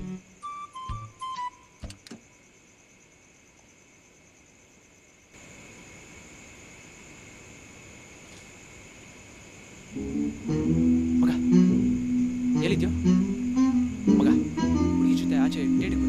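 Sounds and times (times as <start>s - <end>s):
night insects chirring: 0.0s - 16.0s
faint hiss: 1.6s - 16.0s.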